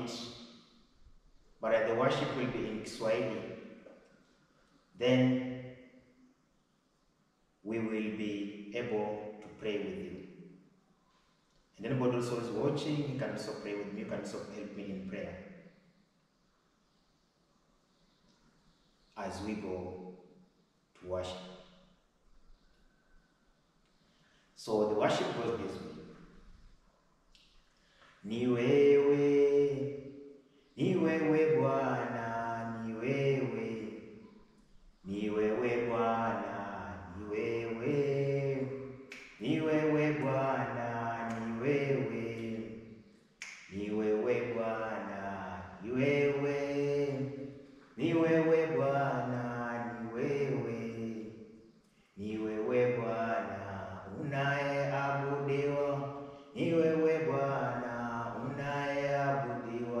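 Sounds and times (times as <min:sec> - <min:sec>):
man singing unaccompanied: 0:00.0 - 0:00.3, 0:28.2 - 0:30.0, 0:30.8 - 0:34.1, 0:35.1 - 0:42.9, 0:43.6 - 0:47.4, 0:48.0 - 0:51.4, 0:52.2 - 1:00.0.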